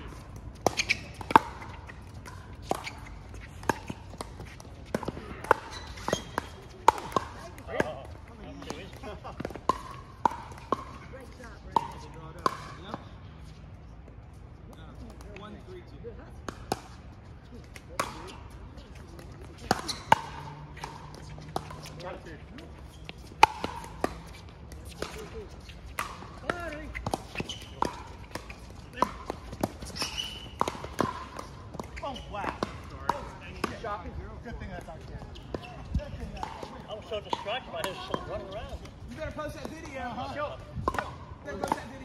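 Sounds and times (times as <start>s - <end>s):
paddles hitting plastic ball: 0.0s - 12.9s, 23.2s - 33.9s.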